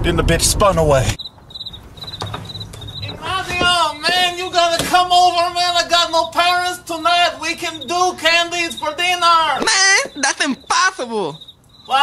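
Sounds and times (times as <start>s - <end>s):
crickets chirping: 1.2s - 12.0s.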